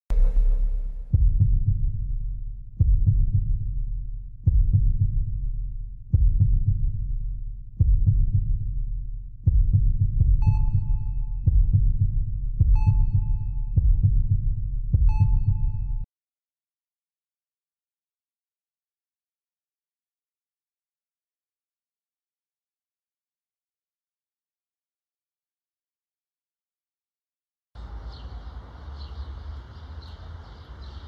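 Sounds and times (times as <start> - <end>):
deep heartbeat-like thump: 0.1 - 16.1.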